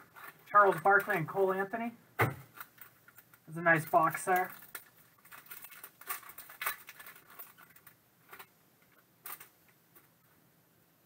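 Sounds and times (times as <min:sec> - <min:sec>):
cards rustling: 0:00.0 - 0:01.7, 0:02.5 - 0:10.2
foil wrapper crinkling: 0:00.0 - 0:01.8, 0:02.5 - 0:09.6.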